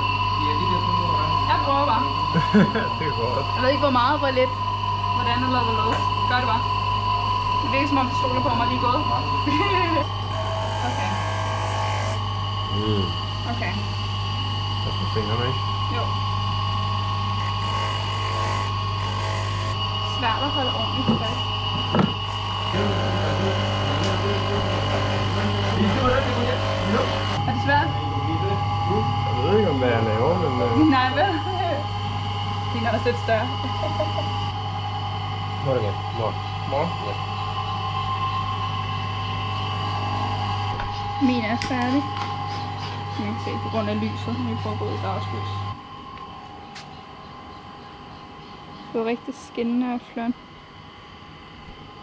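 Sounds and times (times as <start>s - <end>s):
polishing motor hum and whine: 0.0s - 52.0s
metal ring hissing on polishing wheel: 7.4s - 13.8s, 17.2s - 34.6s.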